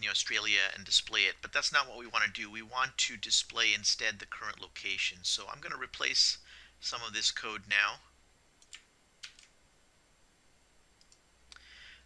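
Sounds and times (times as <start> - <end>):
computer mouse clicks: 8.6 - 9.5, 11.0 - 11.2
keyboard clicks: 8.6 - 9.5, 11.0 - 11.2.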